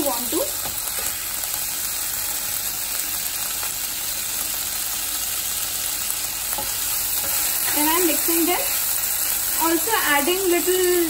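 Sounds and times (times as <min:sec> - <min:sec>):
vegetables sizzling in a wok: 0:00.0 - 0:11.0.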